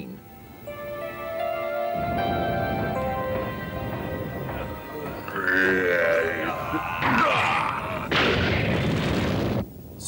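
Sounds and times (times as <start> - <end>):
low pitched creature call: 4.9 - 8.2.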